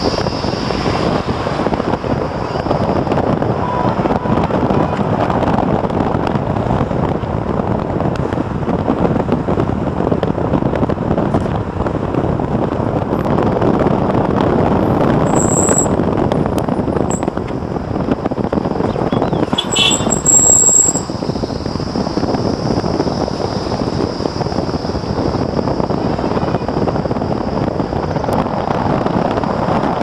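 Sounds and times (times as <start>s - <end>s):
road vehicle rumble: 0.0s - 30.0s
short high-pitched tones: 15.3s - 16.0s, 19.2s - 21.0s.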